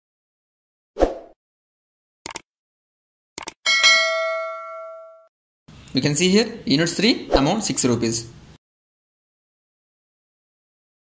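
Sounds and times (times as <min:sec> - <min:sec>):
notification bell ding: 0:03.7 - 0:05.3.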